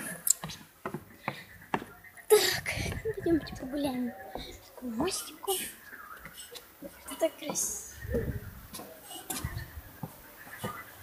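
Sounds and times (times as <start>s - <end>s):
footsteps: 0.0s - 2.0s, 7.4s - 11.0s.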